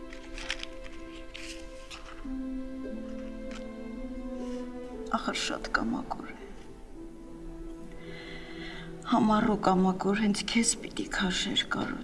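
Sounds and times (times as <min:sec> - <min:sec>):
faint music: 0:00.0 - 0:12.0
person speaking: 0:04.4 - 0:06.8.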